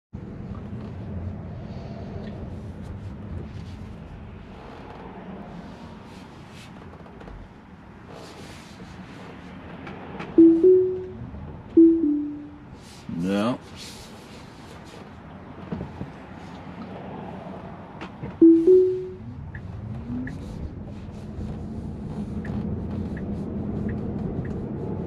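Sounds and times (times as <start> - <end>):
road and tyre noise: 0.2 - 25.0
falling two-note chime: 10.4 - 11.2, 11.8 - 12.6, 18.4 - 19.2
rising two-note chime: 10.4 - 11.2, 11.8 - 12.6, 18.4 - 19.2.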